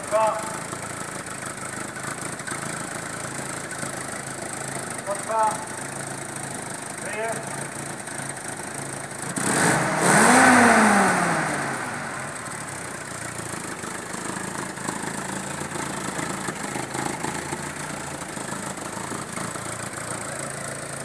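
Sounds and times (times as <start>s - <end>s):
jeep engine running and revving: 0.0s - 21.0s.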